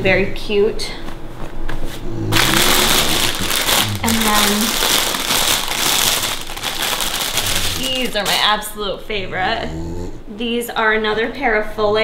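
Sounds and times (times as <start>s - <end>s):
plastic bag crinkling: 2.3s - 8.7s.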